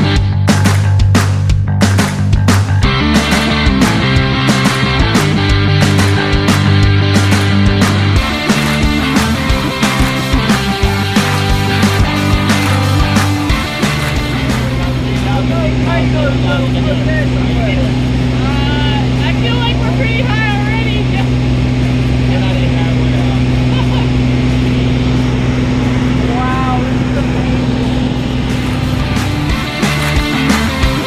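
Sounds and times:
plane engine and propeller: 0:02.8 - 0:31.0.

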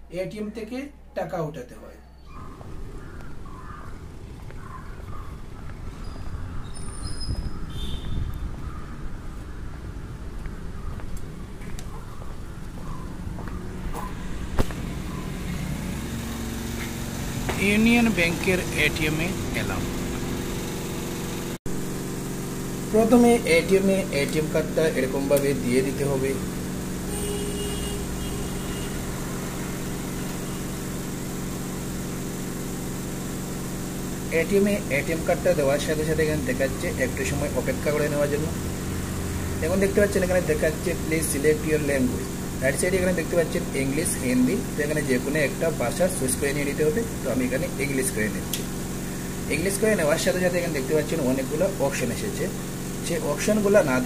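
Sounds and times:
low mechanical hum: 0:02.0 - 0:54.0
person talking: 0:17.5 - 0:20.1, 0:22.9 - 0:26.5, 0:34.3 - 0:38.6.

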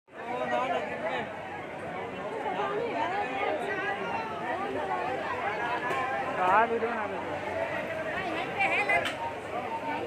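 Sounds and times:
crowd chatter: 0:00.1 - 0:10.0.

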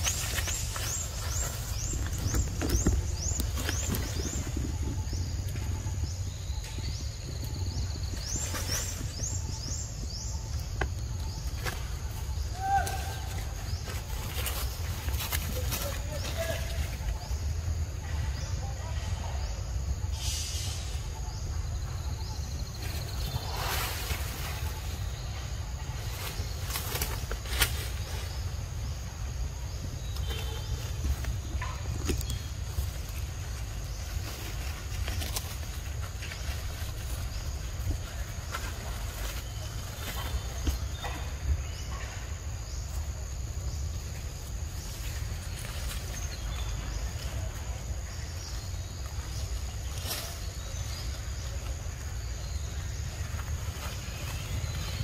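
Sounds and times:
dry leaves and twigs crackling: 0:00.0 - 0:20.1, 0:21.1 - 0:55.0.

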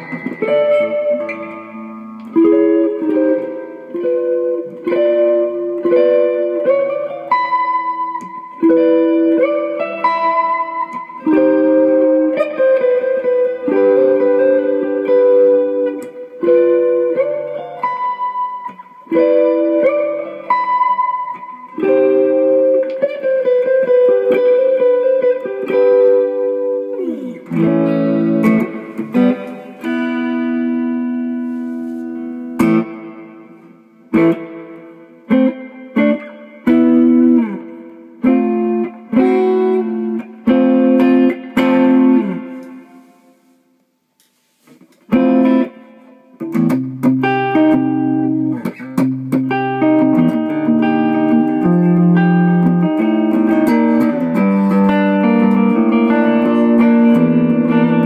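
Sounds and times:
electric guitar with reverb: 0:00.0 - 0:43.8, 0:44.7 - 0:58.0.

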